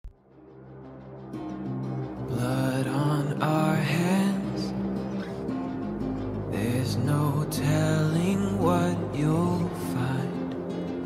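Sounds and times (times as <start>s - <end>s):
slow music with sustained low notes: 0.1s - 11.0s.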